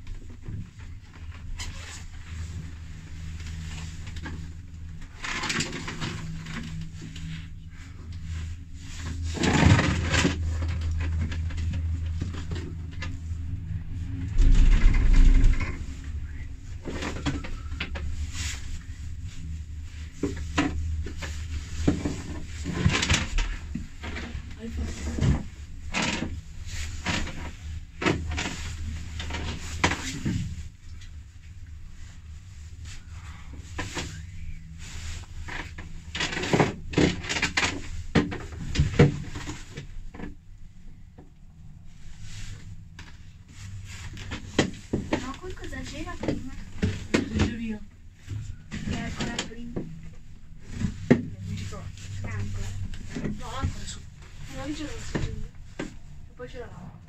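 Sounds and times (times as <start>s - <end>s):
low cabin hum: 0.0s - 57.0s
knocks and rattles: 9.0s - 18.6s.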